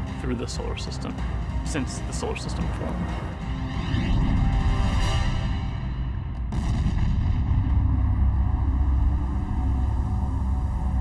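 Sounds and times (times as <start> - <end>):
faint ominous music: 0.0 - 11.0
deep steady rumble: 1.2 - 11.0.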